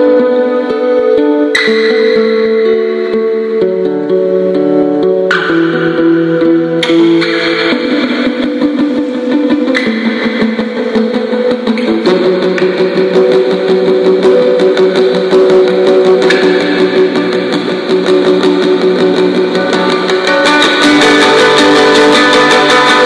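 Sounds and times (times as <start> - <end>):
post-rock guitar music: 0.0 - 23.0.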